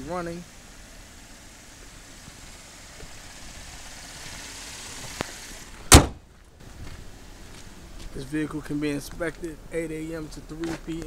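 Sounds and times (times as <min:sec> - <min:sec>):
car engine idling: 0:00.0 - 0:11.0
car hood slammed shut: 0:05.9 - 0:06.2.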